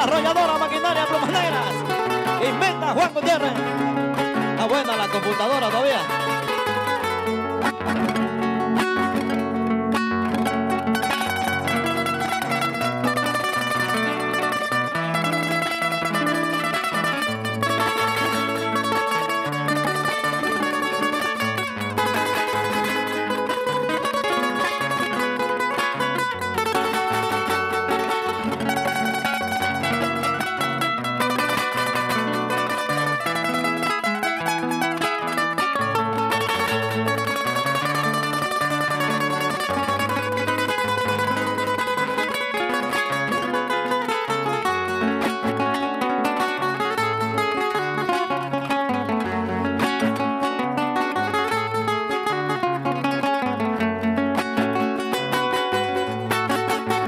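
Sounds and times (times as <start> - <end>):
two acoustic guitars playing: 0.0 - 57.0.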